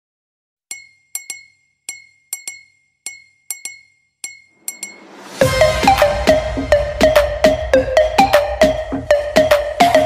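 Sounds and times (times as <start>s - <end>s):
glassy chime notes: 0.7s - 10.0s.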